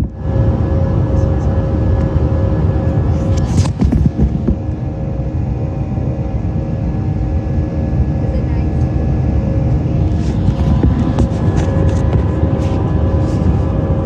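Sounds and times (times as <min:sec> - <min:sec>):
jet engine cabin rumble: 0:00.0 - 0:14.0
steady whining tones: 0:00.0 - 0:14.0.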